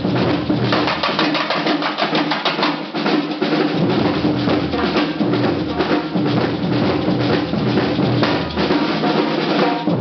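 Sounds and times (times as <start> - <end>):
bass drums: 0.0 - 1.2, 3.4 - 10.0
percussion band drumming: 0.0 - 10.0.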